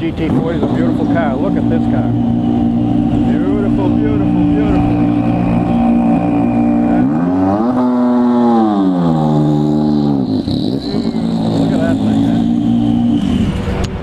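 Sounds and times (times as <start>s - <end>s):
race car engine revving: 0.0s - 14.0s.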